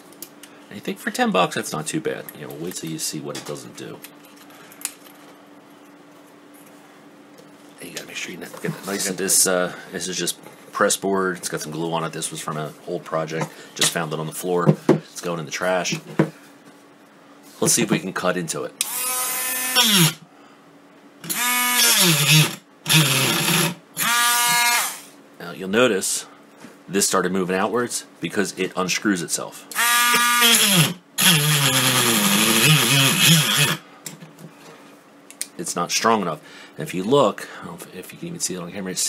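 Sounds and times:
faint steady hum: 0:00.0 - 0:39.0
rotary tool cutting disc whining: 0:18.8 - 0:20.2, 0:21.2 - 0:25.1, 0:29.8 - 0:33.8.

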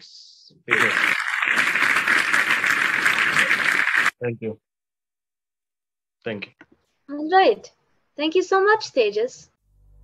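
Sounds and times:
hand clapping: 0:00.7 - 0:04.2.

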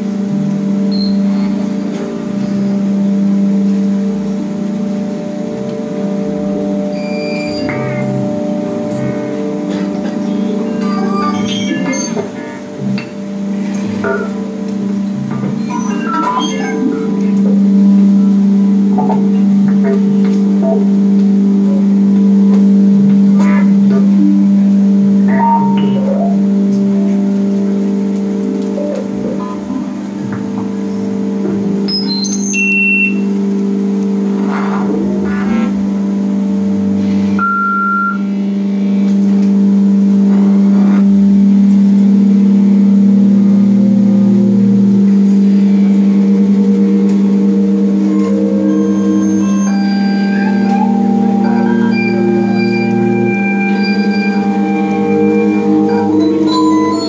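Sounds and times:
loud low drone: 0:00.0 - 0:15.9, 0:33.1 - 0:57.0
electronic bleeps chirps and clicks: 0:25.3 - 0:26.4, 0:37.4 - 0:38.3.

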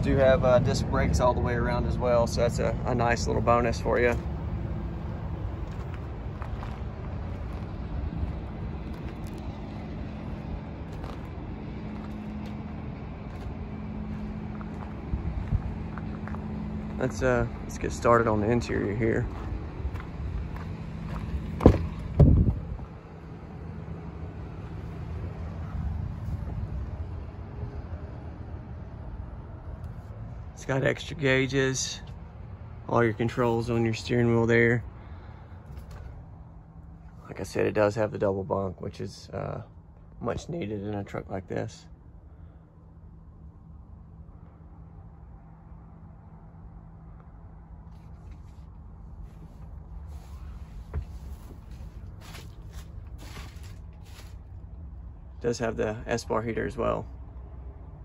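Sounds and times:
low rumble: 0:00.0 - 0:37.5
truck door clunking open: 0:21.1 - 0:22.6
camera rustling and scuffing: 0:47.8 - 0:54.5.

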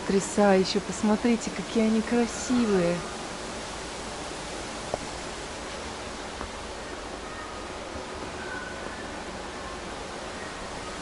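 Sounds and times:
air hissing from vents: 0:00.0 - 0:11.0.

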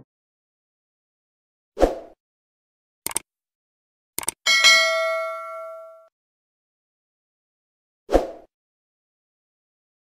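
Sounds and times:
bright bell ding: 0:04.5 - 0:06.1.

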